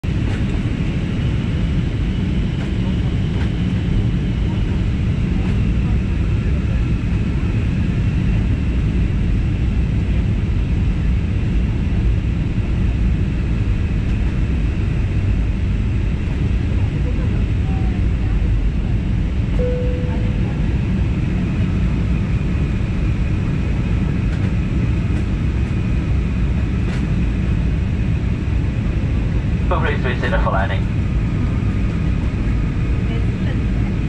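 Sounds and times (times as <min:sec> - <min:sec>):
jet cabin engine and airflow rush: 0:00.0 - 0:34.0
faint high whine: 0:19.6 - 0:20.9.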